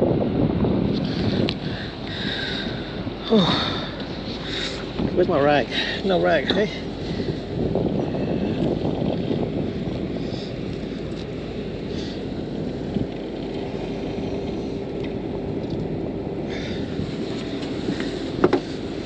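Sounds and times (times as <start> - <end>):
faint steady hum: 0.0 - 19.0
wind buffeting microphone: 0.0 - 19.0.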